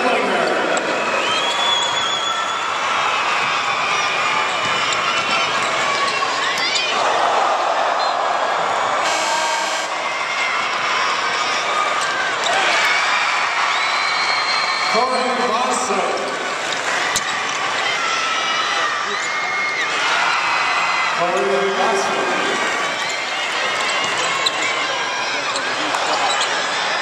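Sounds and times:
crowd murmur and voices: 0:00.0 - 0:27.0
basketball bouncing: 0:03.3 - 0:06.7
short buzzer: 0:09.0 - 0:10.0
sneakers squeaking on court: 0:22.9 - 0:26.8.

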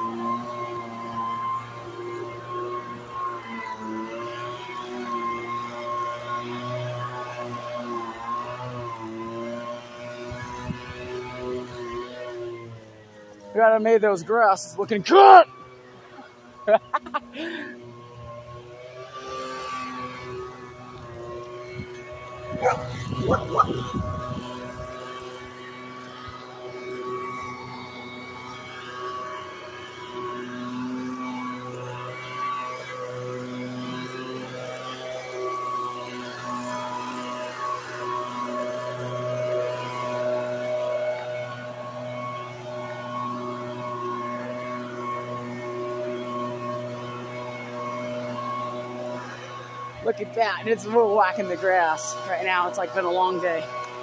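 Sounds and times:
motorized yard tool droning: 0:00.0 - 0:54.0
people laughing: 0:16.7 - 0:17.3.

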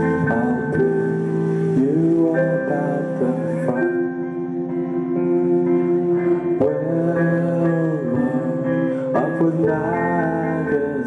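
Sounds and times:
guitars strumming chords: 0:00.0 - 0:11.0.

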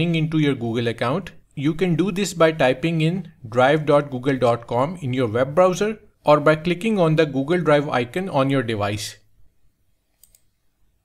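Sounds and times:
computer mouse clicks: 0:10.1 - 0:10.6.

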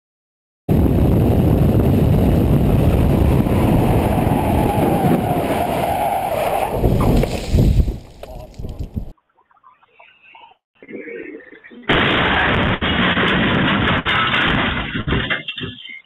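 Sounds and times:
road and wind rumble: 0:00.7 - 0:09.2.

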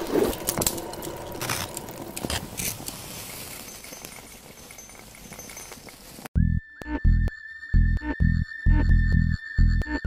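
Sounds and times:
electronic music with pulsing bass: 0:06.4 - 0:10.0.

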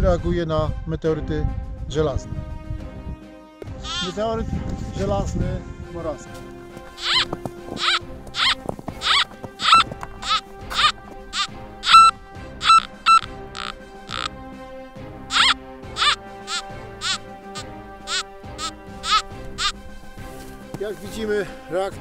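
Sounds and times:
metal detector signal tones: 0:07.0 - 0:07.2, 0:07.8 - 0:14.3, 0:15.3 - 0:17.2.

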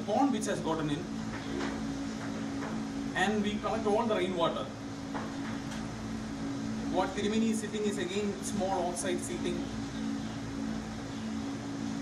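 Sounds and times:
low hum of two close tones: 0:00.0 - 0:12.0.

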